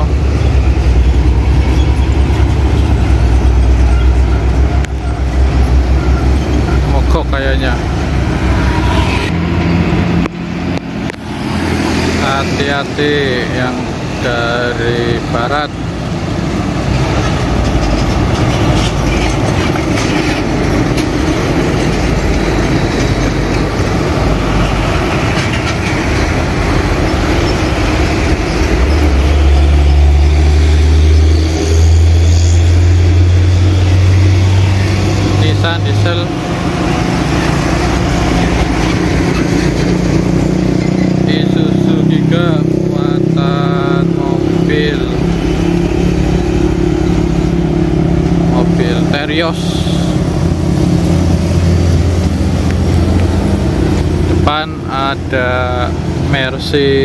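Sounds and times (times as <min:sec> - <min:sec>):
diesel trucks passing: 0:00.0 - 0:57.0
traffic rumble: 0:00.0 - 0:57.0
truck engine deep drone: 0:00.0 - 0:57.0.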